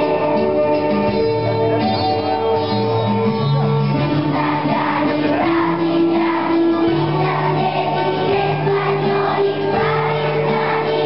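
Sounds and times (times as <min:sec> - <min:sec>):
children's choir singing: 0:03.9 - 0:11.0.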